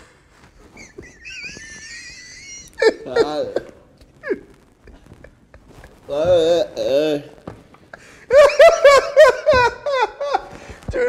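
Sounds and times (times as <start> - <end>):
wheezing squeal of laughter: 0.6 - 3.6
loud burst of laughing: 0.7 - 6.1, 7.9 - 10.6.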